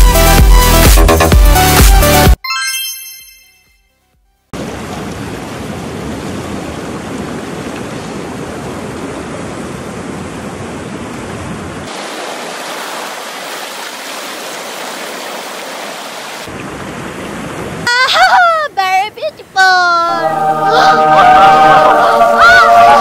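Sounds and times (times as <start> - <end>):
sea surf on rocks: 4.6 - 22.2.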